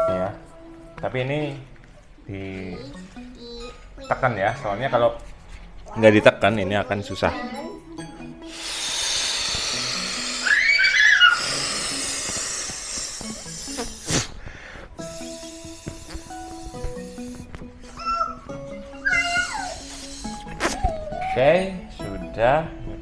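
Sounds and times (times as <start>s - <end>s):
background music: 0.0s - 23.0s
breath blown into inflatable toy: 8.4s - 17.6s, 19.1s - 20.9s
toddler squealing: 9.4s - 13.8s, 17.8s - 21.8s.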